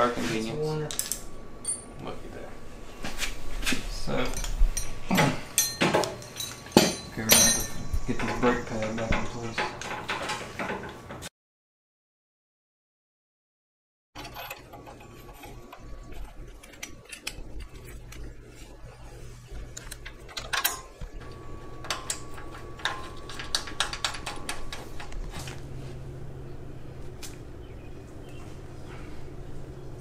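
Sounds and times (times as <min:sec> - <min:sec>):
low steady hum: 0:00.0 - 0:10.2, 0:14.2 - 0:30.0
metal parts clicking and clinking: 0:00.9 - 0:02.0, 0:04.2 - 0:10.9, 0:14.2 - 0:18.4, 0:19.7 - 0:25.6.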